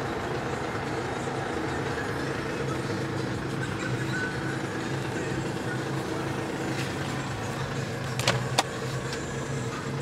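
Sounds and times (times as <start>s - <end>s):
diesel engine idling: 0.0s - 10.0s
glovebox clicks: 8.1s - 8.8s.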